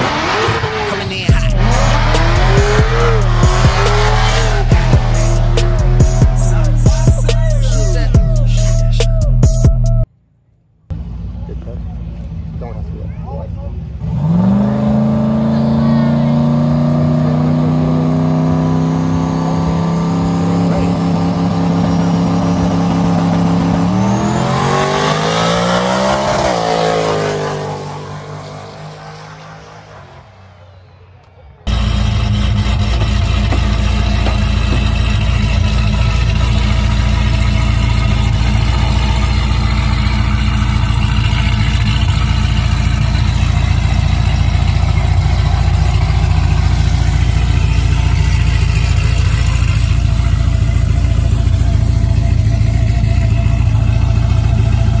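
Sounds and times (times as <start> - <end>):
drag car accelerating: 0.0 - 9.6, 11.0 - 55.0
loud low drone: 1.2 - 10.1, 14.0 - 55.0.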